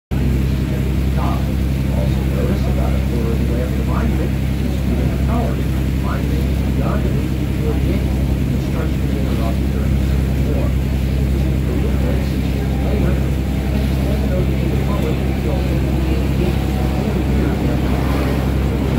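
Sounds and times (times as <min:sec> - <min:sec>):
boat engine humming: 0:00.1 - 0:18.9.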